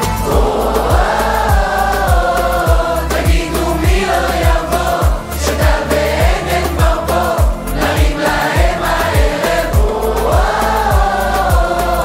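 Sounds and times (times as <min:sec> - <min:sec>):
kick drum beat: 0:00.0 - 0:11.8
group singing pop song: 0:00.0 - 0:12.0.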